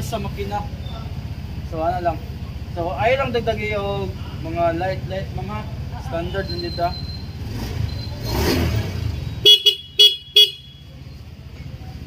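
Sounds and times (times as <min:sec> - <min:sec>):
scooter beeping: 0:00.7 - 0:01.6, 0:05.8 - 0:12.0.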